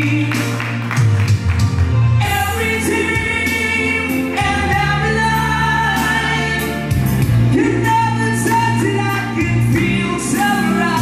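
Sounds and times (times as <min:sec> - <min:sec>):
backing music: 0:00.0 - 0:11.0
man singing rock ballad: 0:02.2 - 0:11.0.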